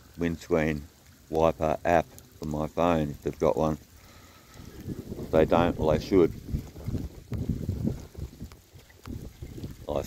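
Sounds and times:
raindrops ticking: 0:00.0 - 0:10.0
wind buffeting microphone: 0:04.4 - 0:10.0.

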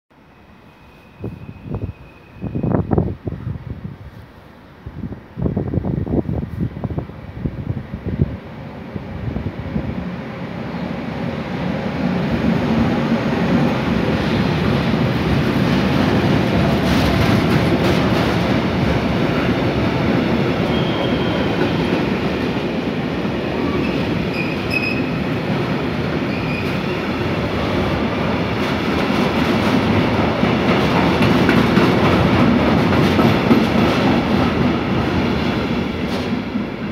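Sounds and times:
wheels rumbling on rails: 0:12.4 - 0:36.9.

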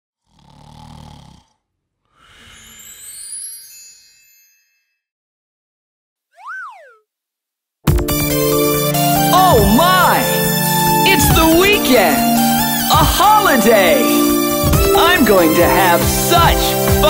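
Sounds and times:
shimmering high tones: 0:02.2 - 0:05.0
cartoon boing pitch glide: 0:06.4 - 0:07.0
children's song music: 0:08.0 - 0:17.0.

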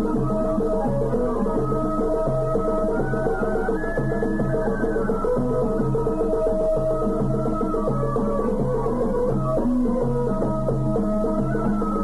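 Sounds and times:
traditional instrumental melody: 0:00.0 - 0:12.0.

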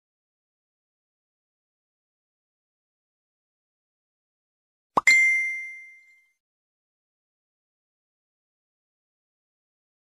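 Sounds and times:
bright bell-like ding: 0:05.0 - 0:06.4.

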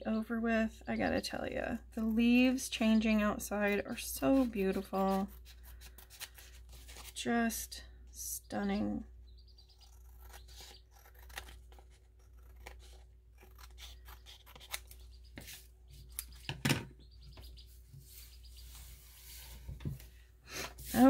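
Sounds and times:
scissors snipping paper: 0:09.8 - 0:16.3.

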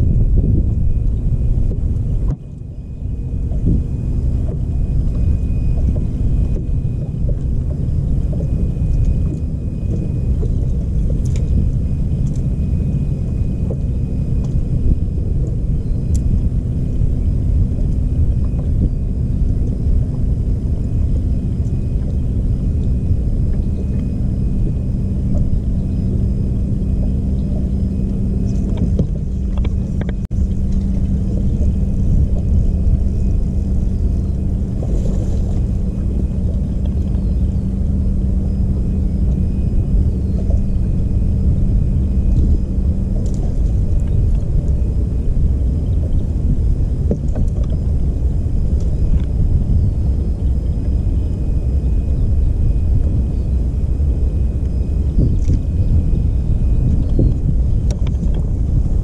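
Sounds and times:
electric trolling motor humming: 0:00.0 - 0:59.0
low rumble on boat deck: 0:00.0 - 0:59.0.

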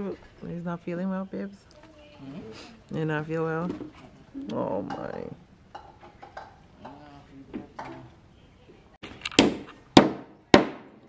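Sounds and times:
hammer driving nail into wood: 0:09.2 - 0:11.0.

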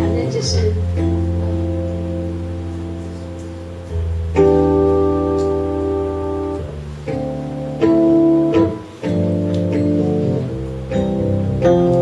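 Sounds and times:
held instrumental chords: 0:00.0 - 0:12.0.

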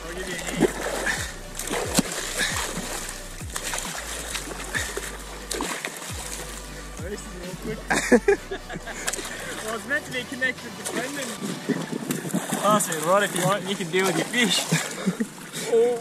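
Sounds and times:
water splashing and sloshing: 0:00.0 - 0:16.0.

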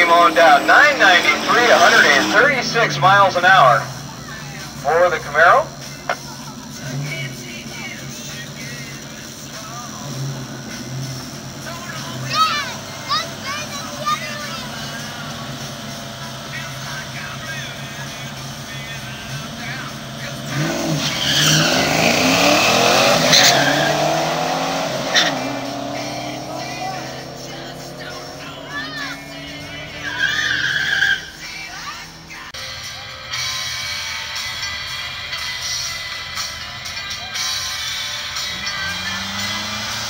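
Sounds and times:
racing car engines revving: 0:00.0 - 0:32.6, 0:33.4 - 0:40.0.

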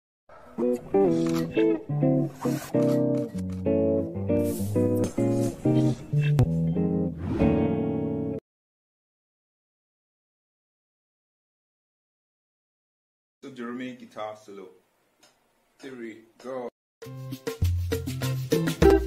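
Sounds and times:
plucked guitar riff: 0:00.6 - 0:08.4, 0:18.8 - 0:19.0.

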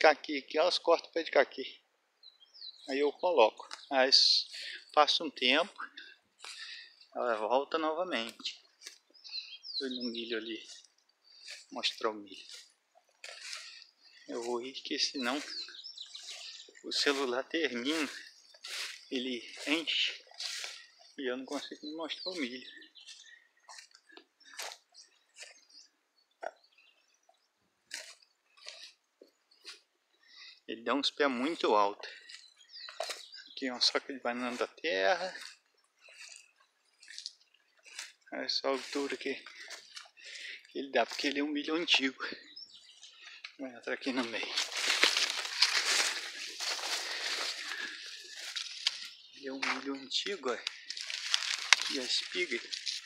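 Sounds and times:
footsteps through tall grass: 0:02.7 - 0:25.8, 0:27.3 - 0:30.0, 0:31.3 - 0:42.2, 0:44.0 - 0:53.0
dry leaves rustling and crackling: 0:15.2 - 0:20.8, 0:44.2 - 0:49.2, 0:50.5 - 0:53.0.

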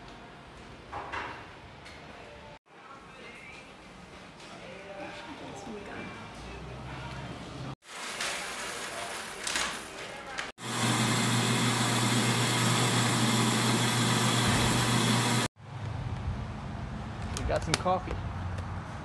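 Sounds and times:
coffee grinder grinding: 0:10.6 - 0:15.5.

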